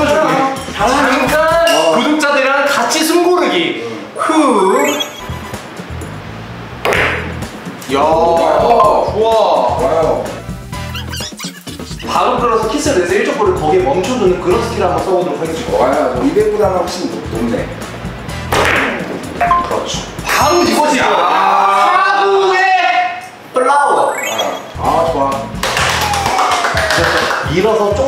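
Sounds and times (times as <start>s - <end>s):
billiard balls clacking: 6.8s - 7.4s, 18.5s - 19.8s.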